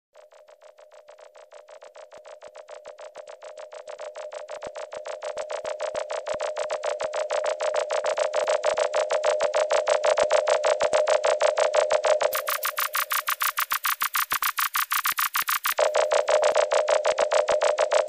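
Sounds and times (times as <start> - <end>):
pulsing synth tone: 0.2 - 18.0.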